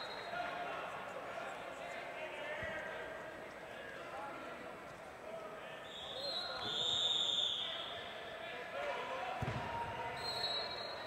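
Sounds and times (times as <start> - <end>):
referee's whistle blasts: 5.9 - 7.9.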